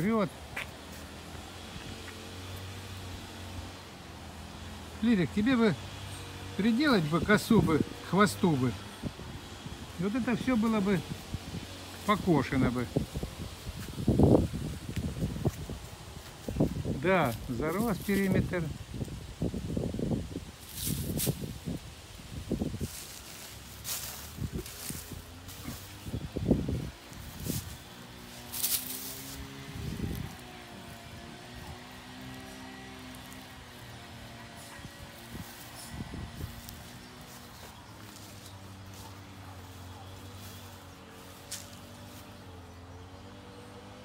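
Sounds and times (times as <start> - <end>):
straw and leaves rustling: 0.0 - 44.0.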